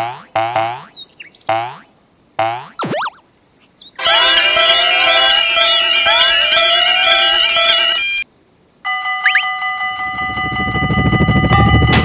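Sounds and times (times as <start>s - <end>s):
railroad crossing alarms: 4.0s - 8.2s, 8.8s - 12.0s.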